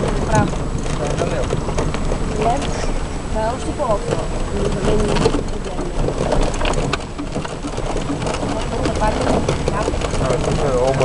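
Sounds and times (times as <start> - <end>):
car body rattling: 0.0 - 11.0
tyres rumbling on dirt: 0.0 - 11.0.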